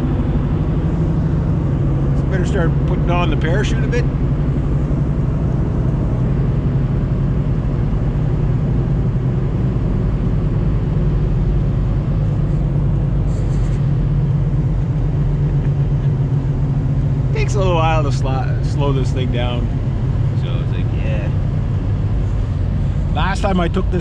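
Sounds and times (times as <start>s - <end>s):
car engine and tyre drone: 0.0s - 24.0s.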